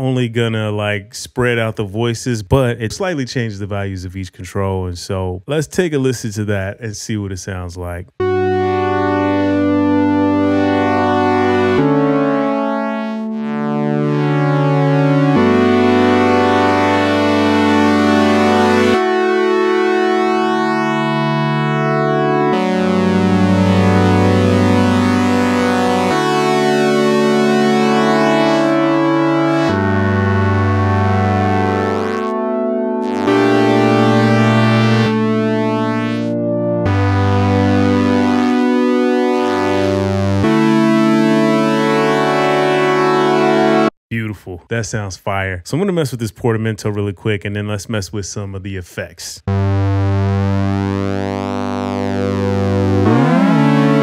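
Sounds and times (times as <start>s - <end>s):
synthesizer sustained chords: 8.2s - 43.9s, 49.5s - 54.0s.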